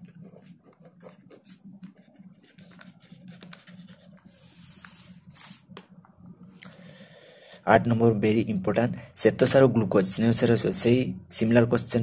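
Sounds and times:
pen scratching on paper: 0.0s - 5.7s
steady low hum: 0.0s - 12.0s.

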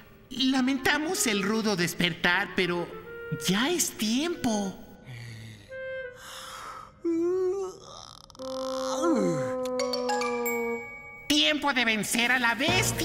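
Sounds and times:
cartoon dinosaur yawning and grunting: 7.0s - 10.8s
orchestral music: 12.6s - 13.0s.

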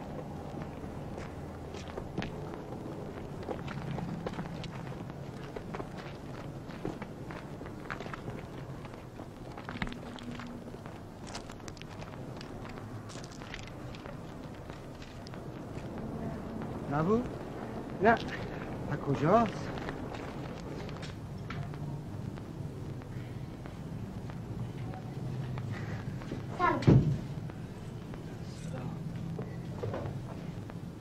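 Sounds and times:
footsteps on gravel: 0.0s - 26.5s.

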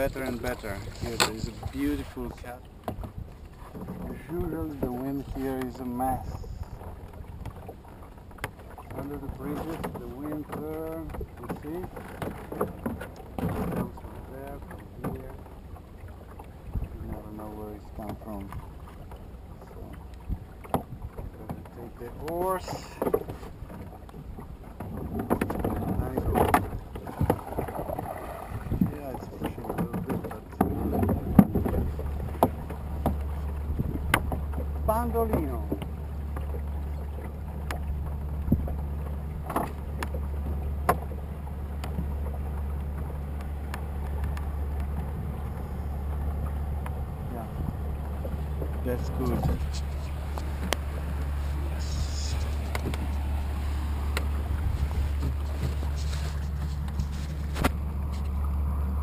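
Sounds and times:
wind rumble on microphone: 0.0s - 14.3s, 16.5s - 18.7s, 19.7s - 59.0s
water moving past hull: 0.0s - 59.0s
low hum: 30.5s - 59.0s.

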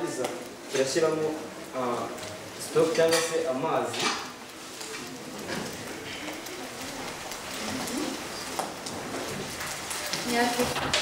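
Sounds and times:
steady low hiss: 0.0s - 11.0s
pots and utensils clinking: 2.2s - 11.0s.

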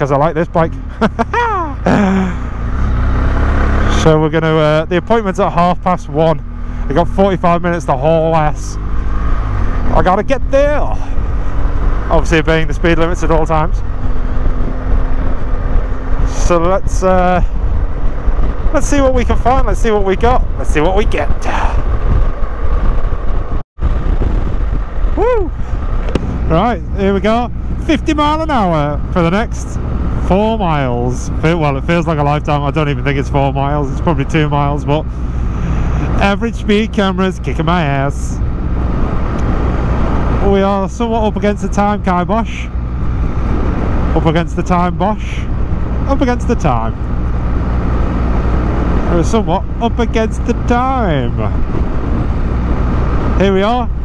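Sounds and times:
motorcycle engine running: 0.0s - 54.0s
road noise: 0.0s - 54.0s
wind noise: 8.4s - 54.0s
wind on microphone: 13.8s - 27.8s, 51.0s - 54.0s.

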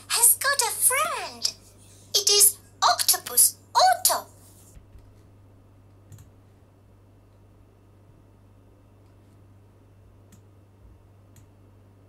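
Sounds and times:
low steady hum: 0.0s - 12.0s
computer mouse click: 6.1s - 6.3s.

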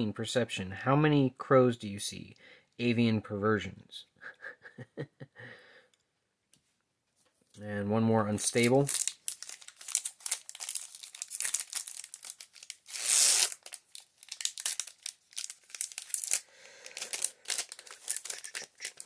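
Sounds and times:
foil wrapper crinkling: 8.5s - 19.0s
foil wrapper tearing: 8.5s - 19.0s.

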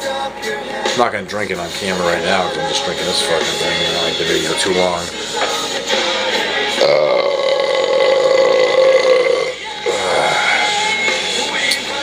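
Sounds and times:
man belching: 6.8s - 11.0s.

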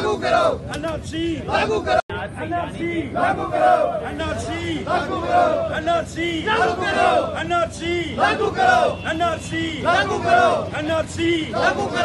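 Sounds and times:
crowd shouting slogans: 0.0s - 0.8s, 1.4s - 2.0s, 2.8s - 12.0s.

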